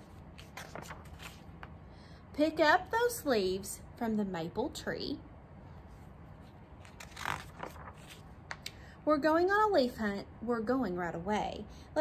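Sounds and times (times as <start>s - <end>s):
book page turning: 0.4s - 1.7s, 6.4s - 8.7s.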